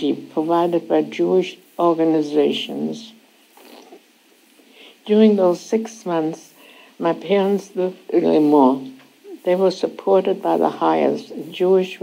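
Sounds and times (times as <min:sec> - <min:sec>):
woman speaking: 0:00.0 - 0:04.0, 0:04.9 - 0:12.0.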